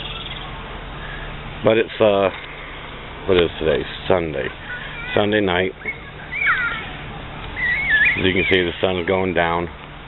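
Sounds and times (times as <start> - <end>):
faint steady background noise: 0.0 - 10.0
high-pitched animal calls: 5.8 - 8.8.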